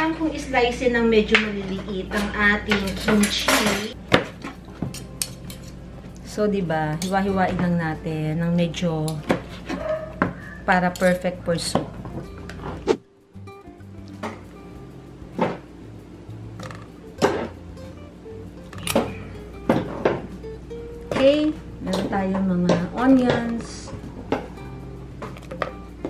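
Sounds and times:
background music: 0.0s - 26.0s
utensil clinking against metal pot: 9.1s - 11.8s.

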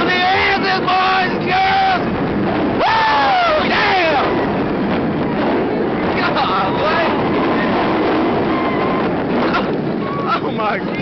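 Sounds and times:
riders yelling: 0.0s - 4.6s
roller coaster wind rush: 0.0s - 11.0s.

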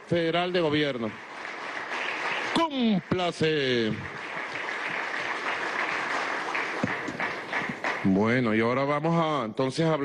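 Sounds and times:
crowd applauding: 0.0s - 8.6s.

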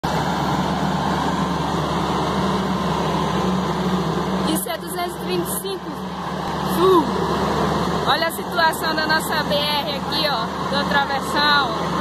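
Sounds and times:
pickup engine running under load: 0.0s - 12.0s.

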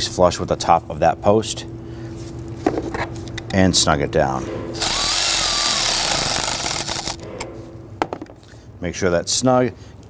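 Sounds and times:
sharp ratchet clicks: 4.8s - 7.2s
ratchet rattling: 4.8s - 7.3s.

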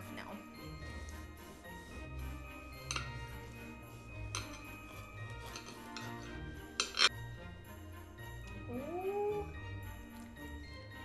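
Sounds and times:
background music: 0.0s - 11.0s
knife clinking on ceramic plate: 4.3s - 7.1s.

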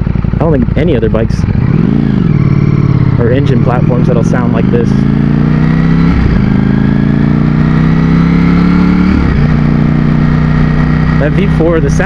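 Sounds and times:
motorcycle engine revving: 0.0s - 12.0s.

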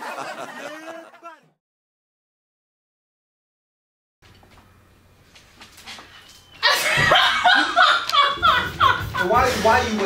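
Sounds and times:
loud laughter: 0.0s - 1.5s, 6.6s - 10.0s.

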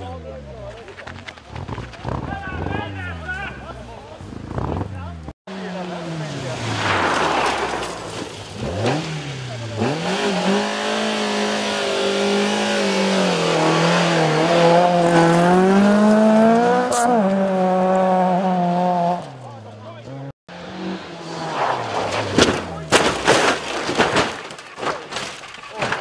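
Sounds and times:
rally car engine revving: 0.0s - 23.9s.

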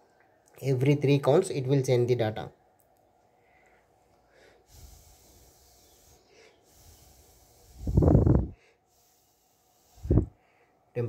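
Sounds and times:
soft breathing: 3.2s - 10.9s.

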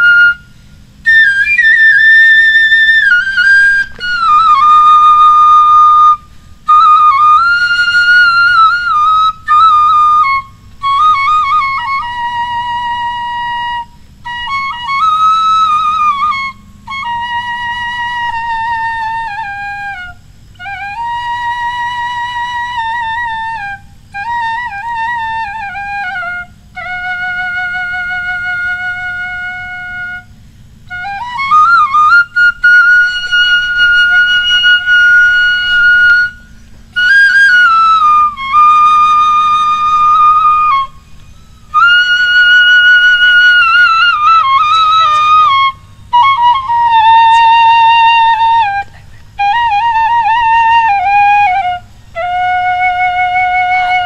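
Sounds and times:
bamboo flute melody: 0.0s - 54.0s
flute player breaths: 0.4s - 1.0s, 6.2s - 6.6s.

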